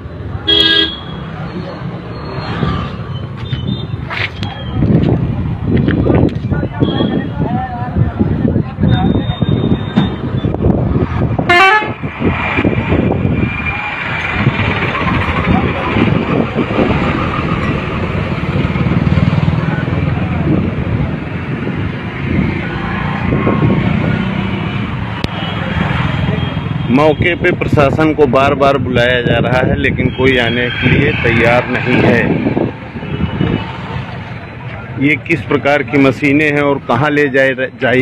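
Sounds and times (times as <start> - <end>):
trucks: 0.0 - 38.0
crowd voices: 1.1 - 2.8, 3.4 - 10.5, 30.4 - 38.0.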